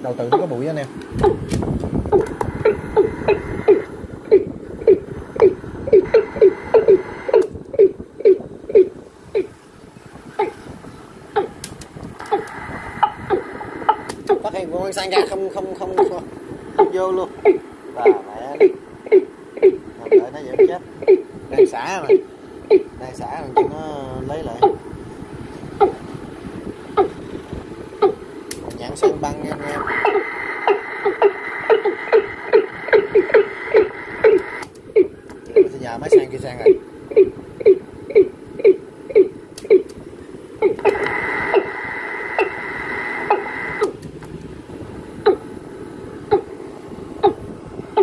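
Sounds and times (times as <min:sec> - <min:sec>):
tape hiss: 0:00.0 - 0:48.0
recorded bird call: 0:02.1 - 0:11.6, 0:12.2 - 0:24.8, 0:26.9 - 0:27.3, 0:28.8 - 0:43.9.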